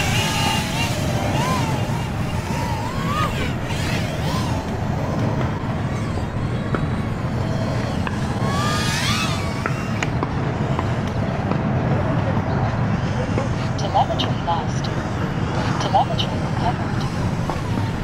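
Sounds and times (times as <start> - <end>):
drone motors whining: 0.0 - 18.0.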